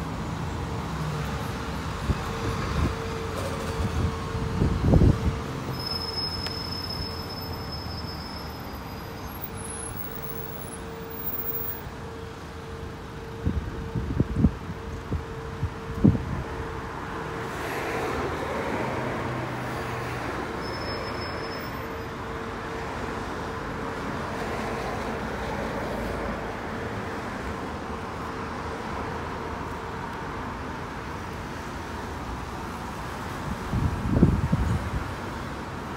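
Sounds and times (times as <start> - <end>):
road traffic engines humming: 0.0 - 35.9.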